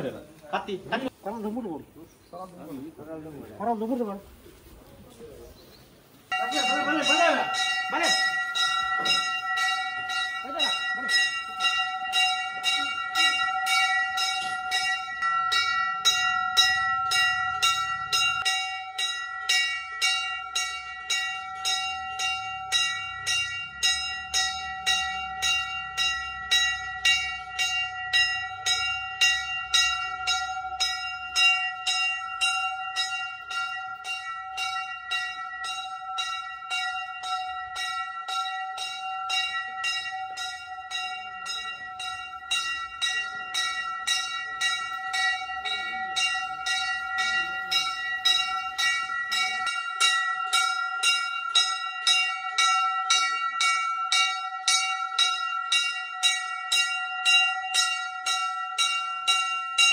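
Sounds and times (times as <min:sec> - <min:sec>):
metal temple bell ringing: 0:00.0 - 0:01.8, 0:06.2 - 0:59.9.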